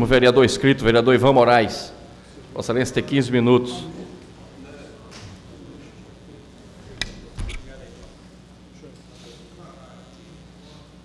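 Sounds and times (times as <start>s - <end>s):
microphone click: 6.9s - 8.2s.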